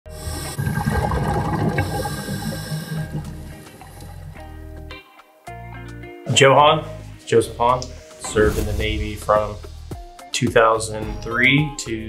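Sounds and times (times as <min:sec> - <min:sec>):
bubbling water rushing: 0:00.6 - 0:02.5.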